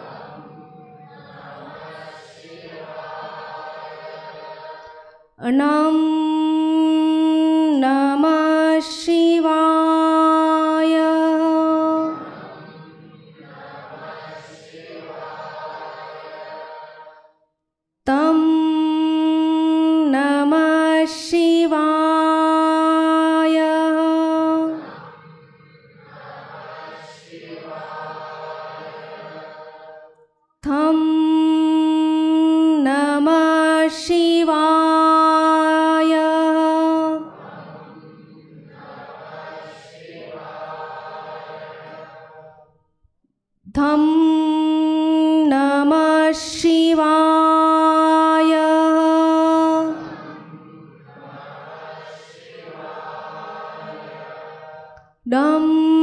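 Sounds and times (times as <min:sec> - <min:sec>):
chorus of voices chanting: 0:00.0 - 0:05.8, 0:06.4 - 0:17.4, 0:19.5 - 0:30.9, 0:31.6 - 0:42.7, 0:45.5 - 0:56.0
woman chanting into a microphone: 0:05.4 - 0:13.3, 0:18.1 - 0:25.1, 0:30.6 - 0:37.4, 0:43.7 - 0:50.2, 0:55.3 - 0:56.0.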